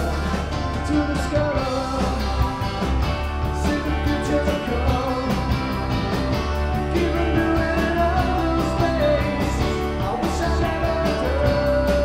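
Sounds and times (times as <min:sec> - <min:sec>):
person singing: 0:00.0 - 0:02.6, 0:03.4 - 0:05.8, 0:06.7 - 0:12.0
drums with cymbal beat: 0:00.0 - 0:12.0
electric bass: 0:00.0 - 0:12.0
electric guitar: 0:00.0 - 0:12.0.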